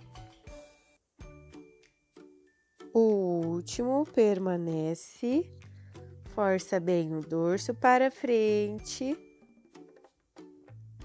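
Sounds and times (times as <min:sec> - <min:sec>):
quiet background music: 0:00.0 - 0:11.0
woman speaking: 0:03.0 - 0:05.5, 0:06.4 - 0:09.2.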